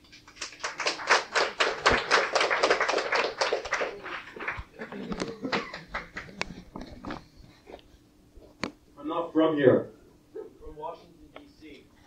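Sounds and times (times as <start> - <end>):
audience clapping: 0.2 - 6.8.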